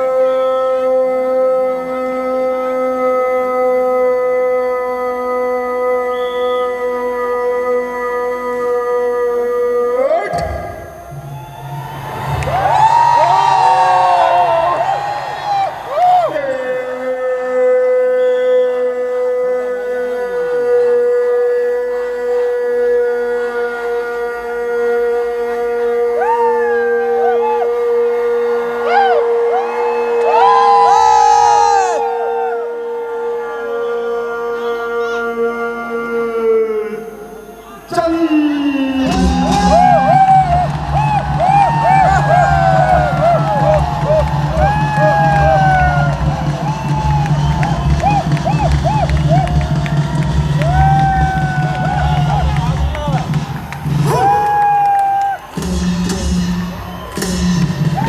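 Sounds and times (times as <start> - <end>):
crowd cheering and shouting: 5.0 - 58.0
soldier's long ceremonial command shout: 54.1 - 55.6.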